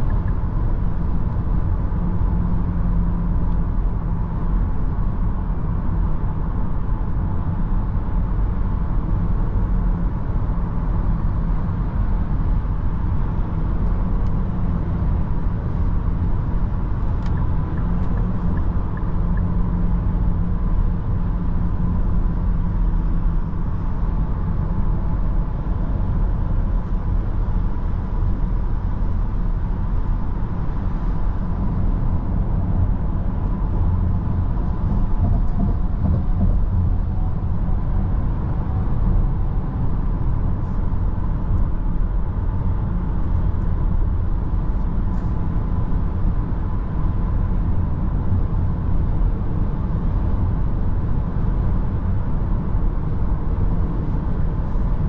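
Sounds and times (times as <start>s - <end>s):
constant low hum: 0.0s - 55.0s.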